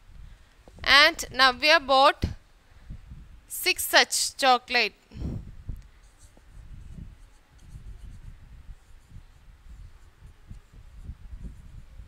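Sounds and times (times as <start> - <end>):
marker rubbing on whiteboard: 6.0 - 12.0.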